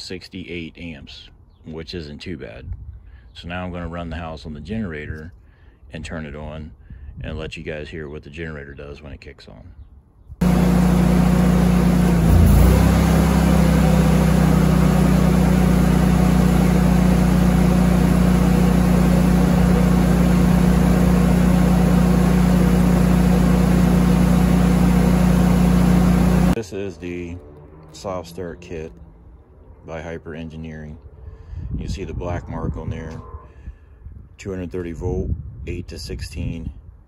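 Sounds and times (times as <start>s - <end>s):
generator bogging under load: 10.4s - 26.6s
generator humming: 10.4s - 26.6s.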